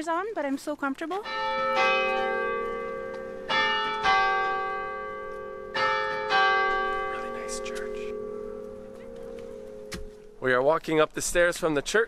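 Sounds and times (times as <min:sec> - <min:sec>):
church bell ringing: 0:01.2 - 0:10.8.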